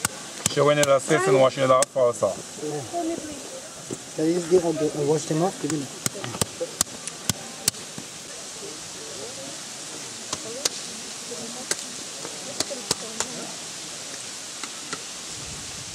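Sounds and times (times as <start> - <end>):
stream rushing around rocks: 0.0 - 15.9.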